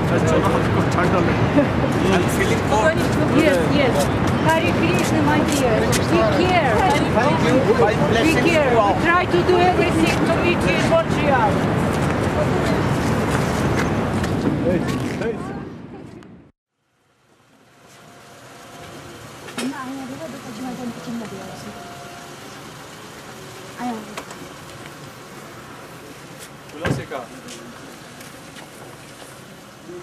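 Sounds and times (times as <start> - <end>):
people talking over one another: 0.0 - 13.3.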